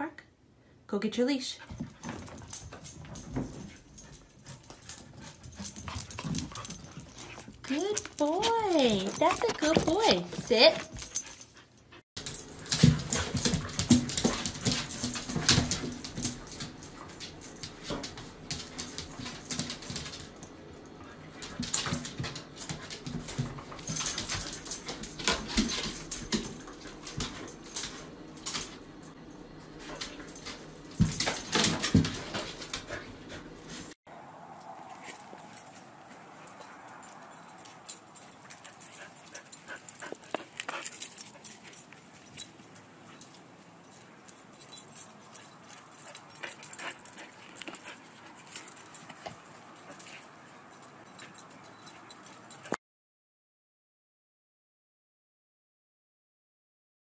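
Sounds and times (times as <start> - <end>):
outdoor background: 0.4 - 52.8
metallic jingling: 1.7 - 33.8, 34.9 - 52.8.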